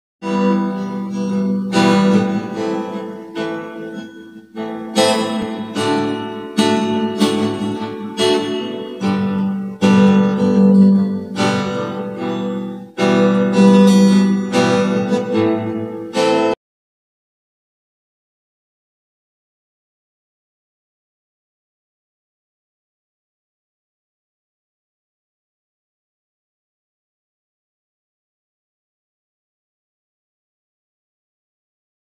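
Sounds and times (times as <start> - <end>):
acoustic guitar chords ringing: 0.2 - 16.6.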